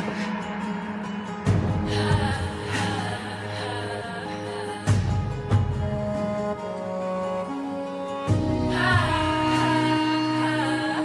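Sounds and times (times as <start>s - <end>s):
music with sustained notes: 0.0s - 11.0s.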